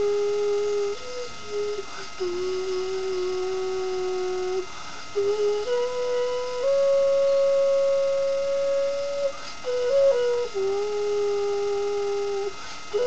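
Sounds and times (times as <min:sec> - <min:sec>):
clay vessel flute melody: 0:00.0 - 0:13.0.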